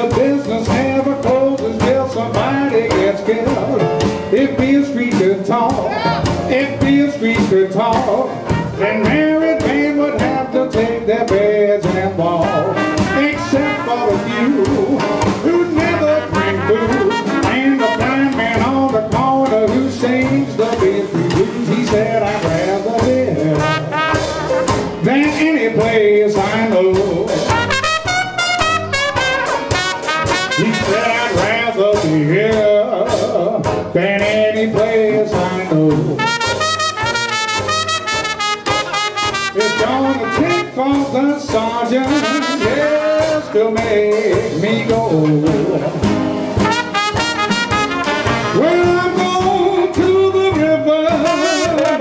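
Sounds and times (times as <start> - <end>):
jazz band playing: 0.0 - 52.0.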